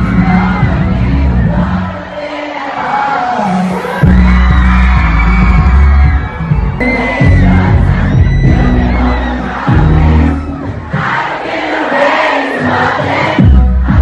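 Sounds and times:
large arena crowd: 0.0s - 14.0s
live pop music with heavy bass: 0.0s - 14.0s.

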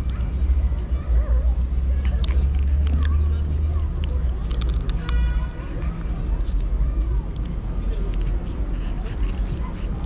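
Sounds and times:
faint distant voices: 0.0s - 10.0s.

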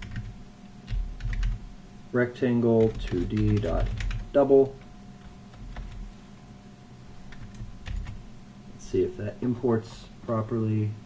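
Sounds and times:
computer keyboard typing: 0.0s - 1.6s, 2.8s - 6.1s, 7.3s - 8.2s.

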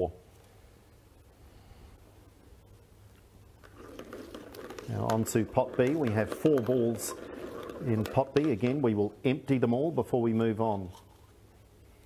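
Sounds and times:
plastic balls clicking in bowl: 3.6s - 9.0s.

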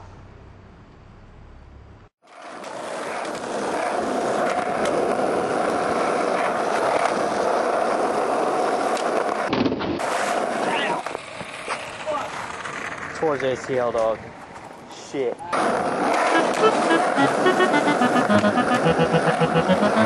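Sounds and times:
skateboard wheels rolling on concrete: 2.2s - 20.0s
skateboard and rider hitting ground: 2.3s - 13.2s, 15.5s - 16.9s.

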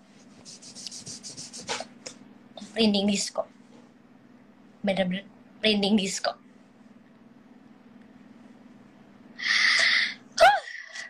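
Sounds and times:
hand rubbing microphone: 0.2s - 1.9s.

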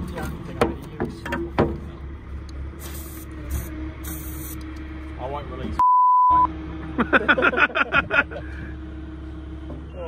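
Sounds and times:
low engine hum: 0.0s - 10.0s
man laughing heartily: 7.0s - 8.8s.

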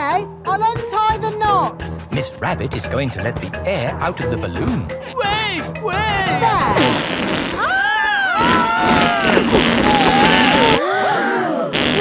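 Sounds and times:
balloon deflating: 6.7s - 10.8s, 11.7s - 12.0s.

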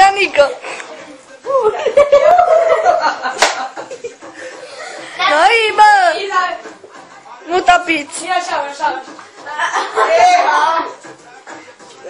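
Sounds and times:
faint talk and laughter: 0.3s - 12.0s
sharp slap: 3.4s - 3.7s.

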